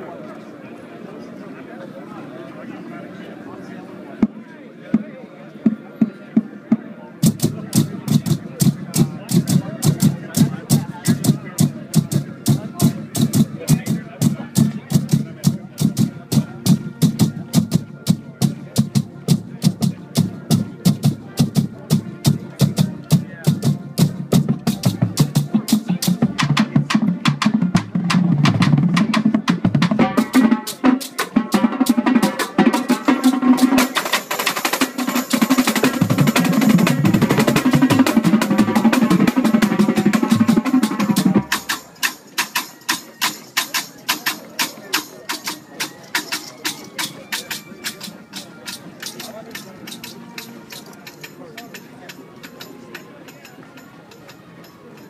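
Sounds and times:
snare drums: 0:04.2 - 0:51.4
tenor drums: 0:04.2 - 0:55.0
bass drums: 0:07.2 - 0:30.6, 0:33.8 - 0:41.7.

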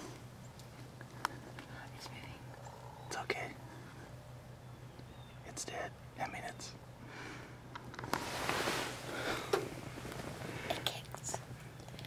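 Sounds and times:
low steady hum: 0:00.0 - 0:12.0
quiet whispering voices: 0:01.2 - 0:04.2, 0:05.4 - 0:06.8, 0:10.4 - 0:11.8.

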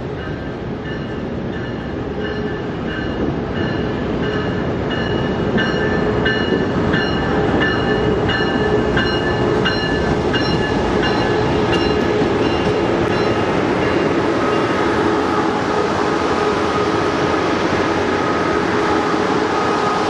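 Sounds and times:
train passing: 0:00.0 - 0:20.0
locomotive bell ringing: 0:00.1 - 0:15.0.

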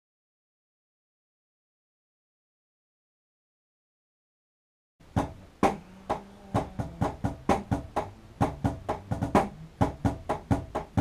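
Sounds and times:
drum kit playing: 0:05.0 - 0:11.0.

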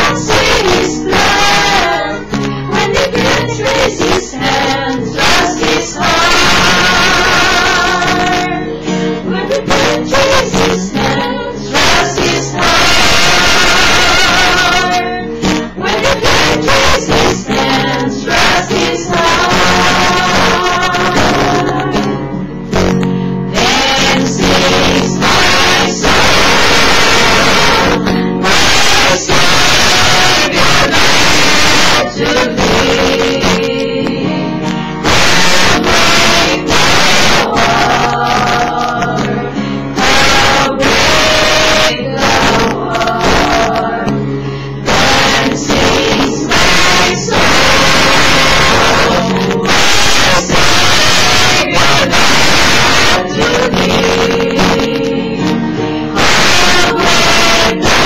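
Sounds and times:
group singing loudly: 0:00.0 - 0:22.3, 0:23.5 - 0:58.0
acoustic guitar: 0:00.0 - 0:58.0.

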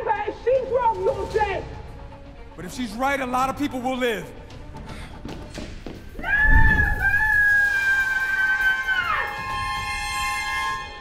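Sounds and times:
dramatic film score music: 0:00.0 - 0:11.0
woman screaming: 0:06.2 - 0:09.5.

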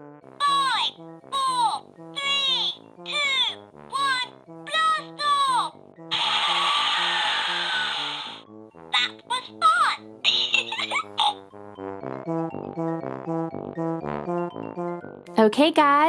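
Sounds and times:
cheerful children's music: 0:00.2 - 0:16.0
cartoonish calls sliding down: 0:06.1 - 0:08.4.

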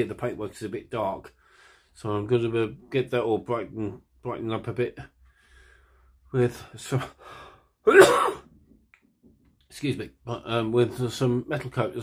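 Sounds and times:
man coughing loudly: 0:07.9 - 0:08.5.

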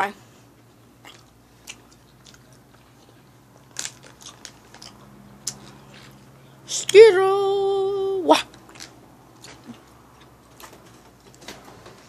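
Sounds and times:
chewing candy crunches: 0:01.0 - 0:06.3, 0:08.5 - 0:11.4.

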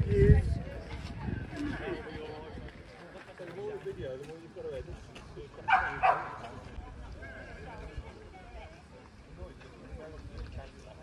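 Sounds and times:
crowd chatter: 0:00.0 - 0:11.0
dog barking: 0:05.7 - 0:06.4.

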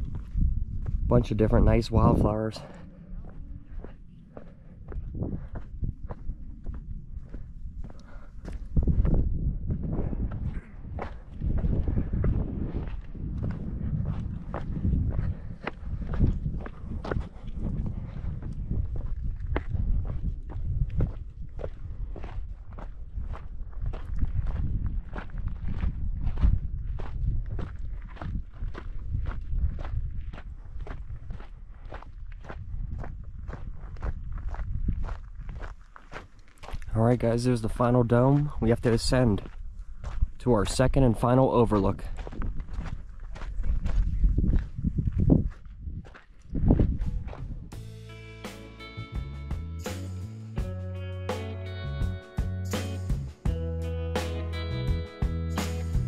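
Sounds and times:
low rumble: 0:00.0 - 0:27.8
footsteps on gritty trail: 0:00.0 - 0:47.9.

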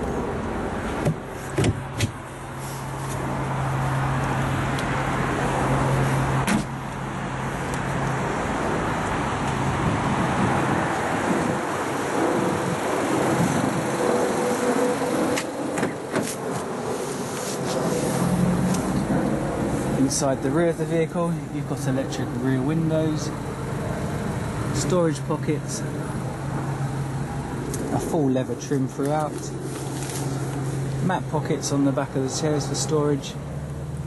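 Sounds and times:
road traffic: 0:00.0 - 0:34.0
car tailgate thump: 0:01.0 - 0:02.2.

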